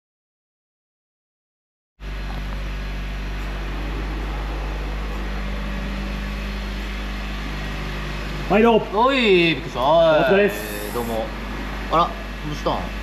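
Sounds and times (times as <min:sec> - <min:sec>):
low rumble: 0:02.0 - 0:10.0
steady mechanical hum: 0:02.0 - 0:13.0.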